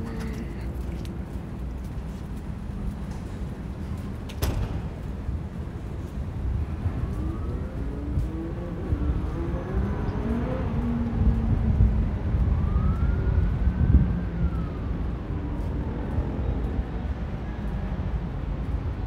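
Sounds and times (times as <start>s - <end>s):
distant city traffic: 0.0s - 19.0s
wind on microphone: 6.4s - 16.0s
distant siren wailing: 6.5s - 17.8s.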